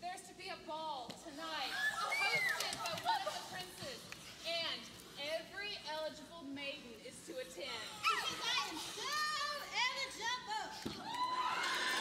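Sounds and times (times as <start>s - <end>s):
women exclaiming and shrieking: 1.6s - 3.8s, 7.7s - 12.0s.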